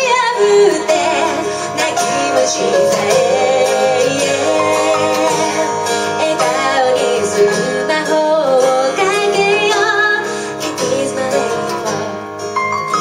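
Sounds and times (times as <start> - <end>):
woman singing: 0.0 - 12.6
acoustic and electric guitar: 0.0 - 13.0.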